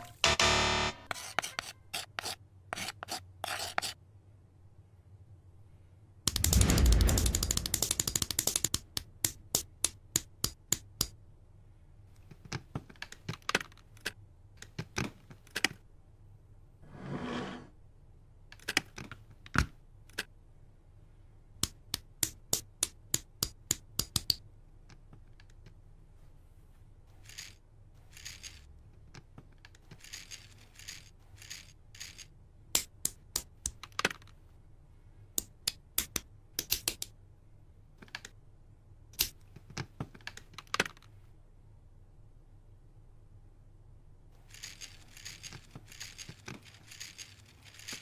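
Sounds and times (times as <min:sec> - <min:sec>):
plastic bricks clicking together: 0:06.3 - 0:11.1, 0:35.4 - 0:37.1
plastic pieces clicking together: 0:06.3 - 0:11.2, 0:18.5 - 0:20.3, 0:35.4 - 0:37.1, 0:39.2 - 0:41.2, 0:44.5 - 0:48.0.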